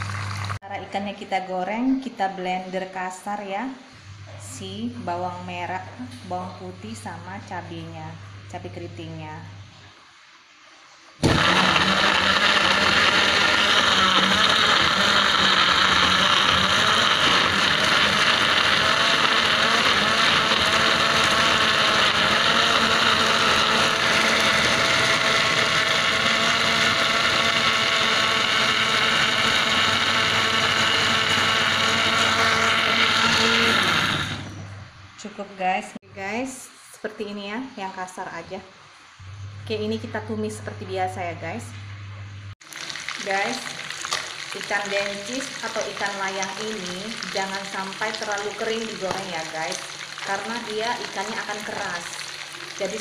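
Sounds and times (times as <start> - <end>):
electric blender grinding: 0.0 - 0.6, 11.2 - 34.8, 42.6 - 53.0.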